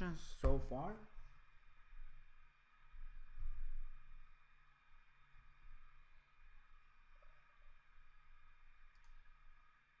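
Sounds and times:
faint hiss: 0.0s - 10.0s
computer mouse clicks: 8.9s - 9.2s.

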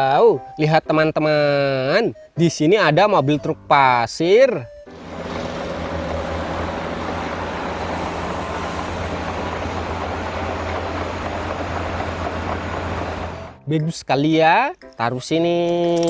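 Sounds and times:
diesel truck engine running: 4.9s - 13.6s.

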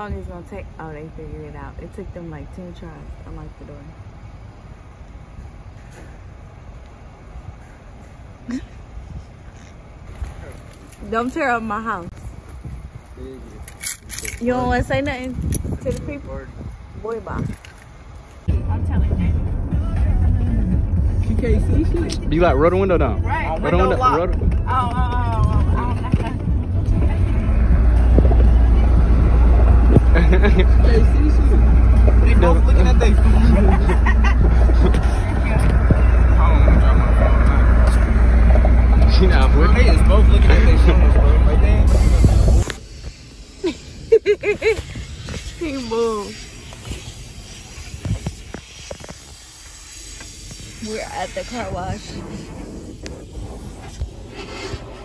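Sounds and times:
low background rumble: 0.0s - 55.0s
car cabin rumble: 18.5s - 42.8s.

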